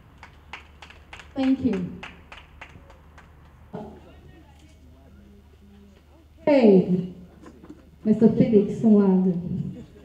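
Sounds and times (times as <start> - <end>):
light hand clapping: 0.2 - 3.6.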